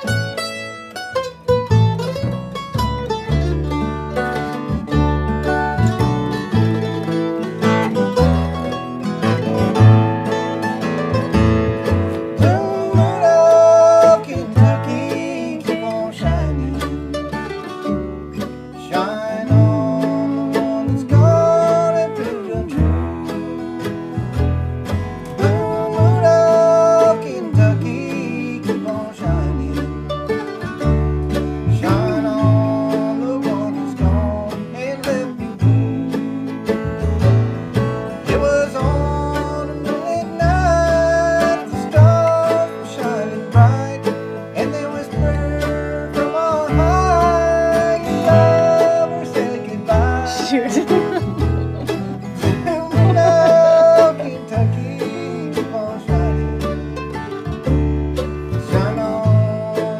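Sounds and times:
mandolin and guitar strumming: 0.0 - 59.9
upright bass thumping: 0.0 - 59.9
man singing: 12.0 - 17.7, 18.4 - 24.2, 25.1 - 30.1, 31.6 - 37.3, 38.1 - 57.0, 58.4 - 59.9.

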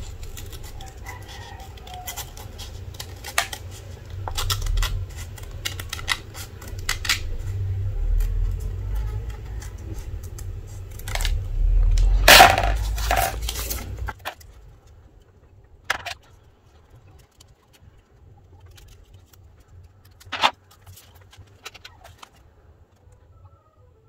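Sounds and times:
scissors snipping: 0.0 - 11.4
paper rustling: 12.0 - 14.6, 15.9 - 22.5.

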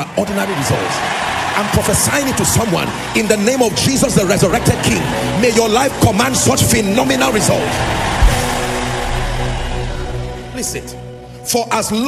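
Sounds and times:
congregation shouting and cheering: 0.2 - 5.4, 6.5 - 10.9
low bass thump: 8.0 - 10.6.

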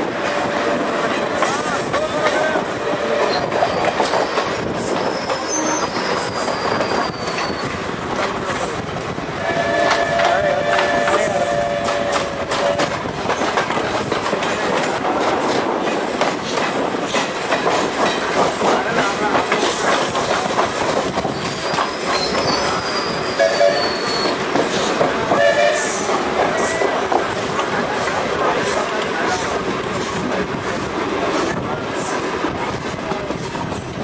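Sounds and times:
train wheels clattering on rails: 0.0 - 34.0
high wheel squeal: 3.2 - 7.9, 21.3 - 24.4.

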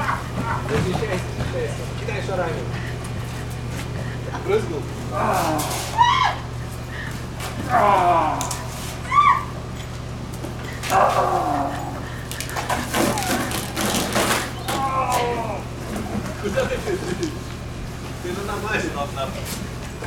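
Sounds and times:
children squealing and shouting: 5.3 - 6.5, 7.7 - 9.6
children shrieking and laughing: 5.3 - 9.6, 10.8 - 13.8.

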